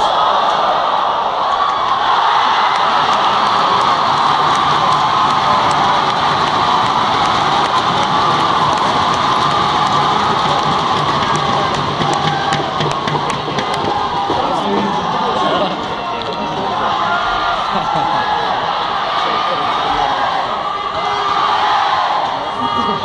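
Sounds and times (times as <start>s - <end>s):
arena crowd cheering and applauding: 0.0s - 23.0s
sharp claps: 2.7s - 14.9s.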